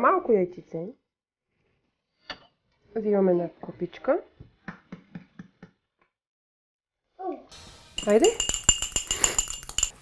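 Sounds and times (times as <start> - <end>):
metal baking tins clinking: 8.0 - 10.0.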